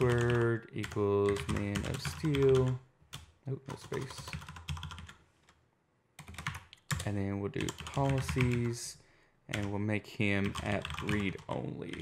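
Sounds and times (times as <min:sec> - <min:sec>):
computer keyboard typing: 0:00.0 - 0:05.2, 0:06.2 - 0:08.7, 0:10.4 - 0:12.0.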